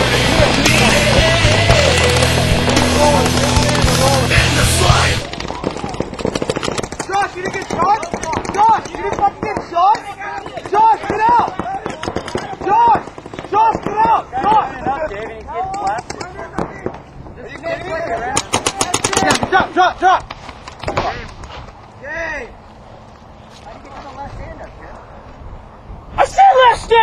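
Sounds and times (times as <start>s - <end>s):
heavy rock music: 0.0s - 5.3s
people shouting: 0.0s - 6.5s, 7.1s - 16.0s
paintball markers popping: 0.5s - 4.2s, 5.2s - 14.6s.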